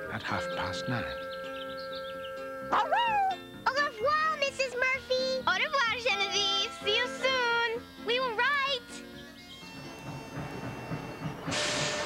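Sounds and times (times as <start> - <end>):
steam locomotive chugging: 4.0 - 12.0
loud hiss of steam: 10.4 - 12.0.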